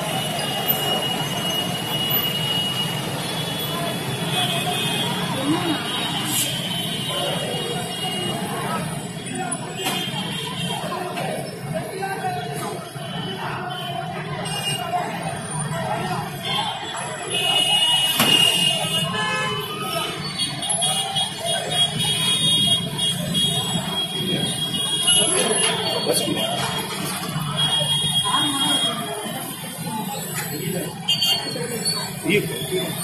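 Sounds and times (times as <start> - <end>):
road traffic: 0.0 - 33.0
indistinct voices: 5.1 - 17.3
vehicle horns: 16.4 - 29.4, 31.0 - 31.6.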